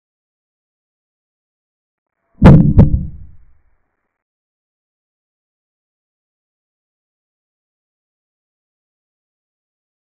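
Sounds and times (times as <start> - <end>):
heavy booming thumps: 2.4 - 3.4.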